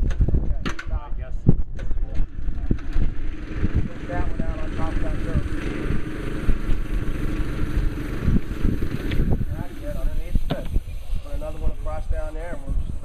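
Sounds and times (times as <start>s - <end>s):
diesel engine idling: 2.3s - 10.8s.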